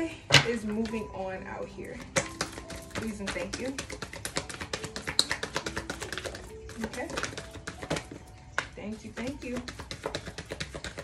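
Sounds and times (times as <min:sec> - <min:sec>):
cards being shuffled by hand: 0:02.1 - 0:08.2, 0:09.6 - 0:11.0.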